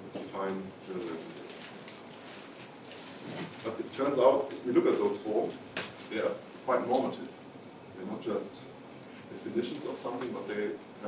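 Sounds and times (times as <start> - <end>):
man speaking: 0.0 - 1.5, 3.6 - 7.3, 8.0 - 10.8.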